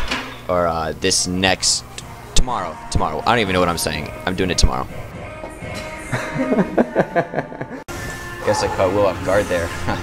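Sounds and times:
man laughing: 6.0 - 7.9, 9.7 - 10.0.

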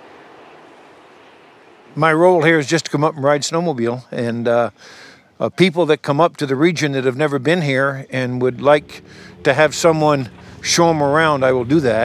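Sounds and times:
soft wind rush: 0.0 - 5.4, 7.3 - 12.0.

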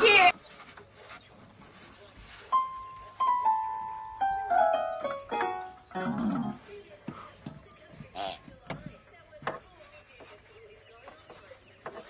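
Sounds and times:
toy keyboard notes: 2.6 - 6.5.

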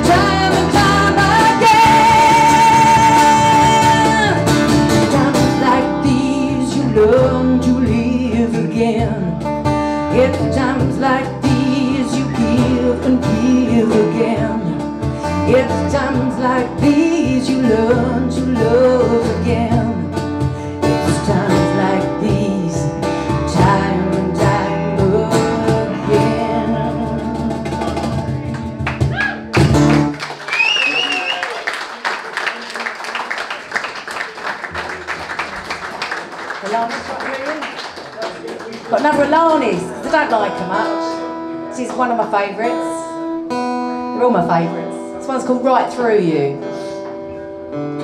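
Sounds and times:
cajon beat: 0.0 - 7.4, 23.4 - 31.7
woman singing: 0.0 - 28.2, 39.0 - 43.3
electric bass: 0.0 - 30.2
acoustic guitar: 0.0 - 31.3, 38.4 - 48.0.

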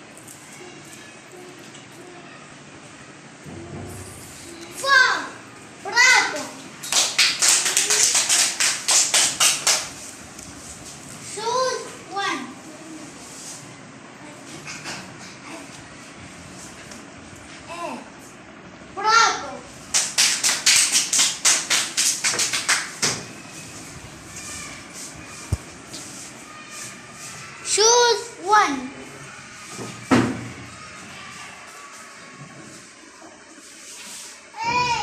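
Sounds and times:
hands clapping in rhythm: 6.8 - 10.0, 19.9 - 23.0
children calling: 21.5 - 35.0.

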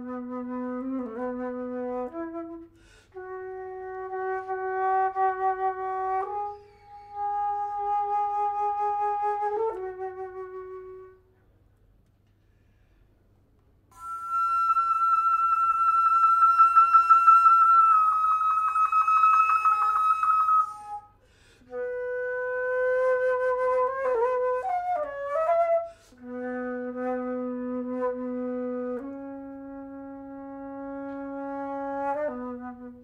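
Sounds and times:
solo flute playing: 0.0 - 11.4, 13.9 - 33.0.

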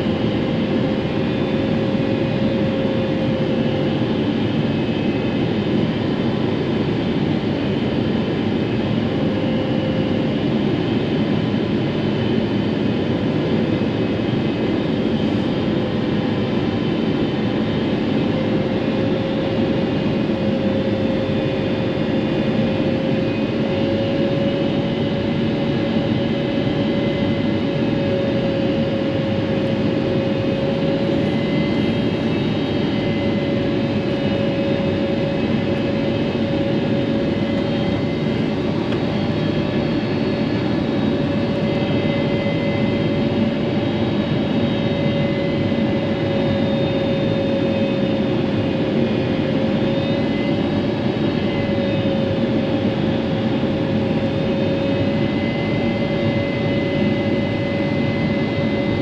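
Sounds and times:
jet engine cabin roar: 0.0 - 59.0.

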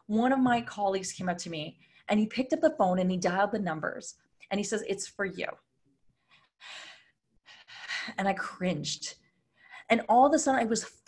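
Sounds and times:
woman speaking: 0.0 - 5.6, 8.1 - 9.2, 9.8 - 11.0
faint breath: 6.2 - 8.2.

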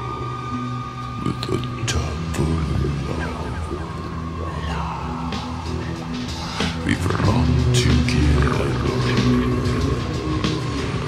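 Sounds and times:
heavy rock instrumental: 0.0 - 11.0.

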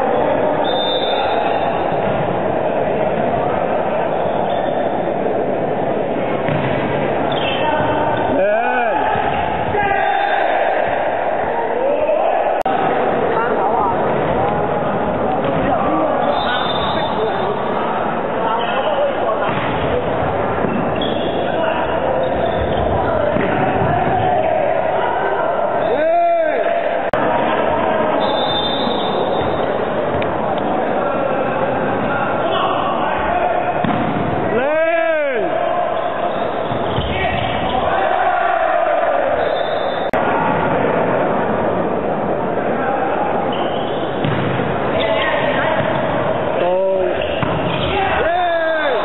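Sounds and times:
players and spectators shouting: 0.0 - 6.2, 7.1 - 41.6, 42.4 - 49.0
volleyball thumps: 6.4 - 7.1, 19.4 - 21.0, 22.6 - 24.3, 33.8 - 34.4, 44.2 - 44.8, 47.2 - 48.0
volleyball smacks: 6.5 - 7.0, 33.8 - 34.3, 44.2 - 44.7.

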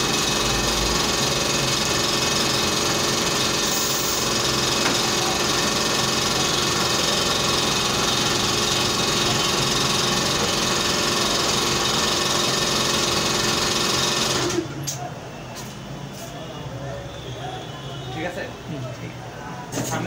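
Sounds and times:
electric motor machine humming: 0.0 - 14.6.

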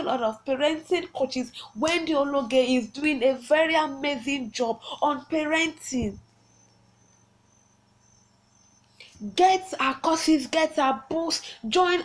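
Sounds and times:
cricket trilling: 0.1 - 10.2.

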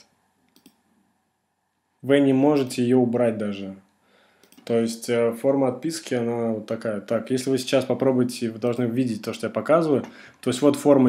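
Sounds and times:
faint computer mouse clicks: 0.5 - 0.8, 4.4 - 4.7.

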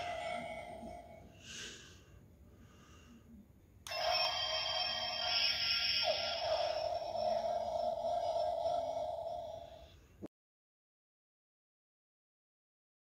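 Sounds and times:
toy electronic tone with downward swoop: 3.9 - 9.8.

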